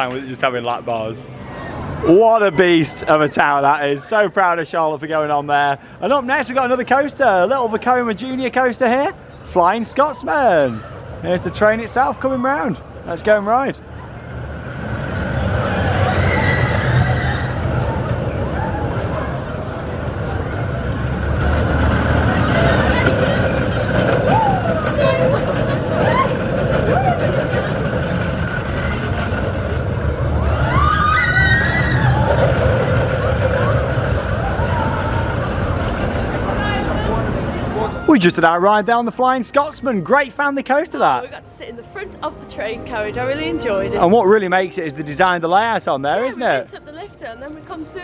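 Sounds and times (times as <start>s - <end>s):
roller coaster rumbling on track: 0.0s - 48.0s.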